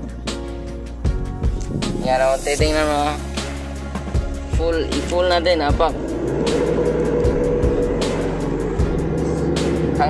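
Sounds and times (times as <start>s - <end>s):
background music: 0.0s - 10.0s
diesel engine at full throttle: 4.8s - 10.0s.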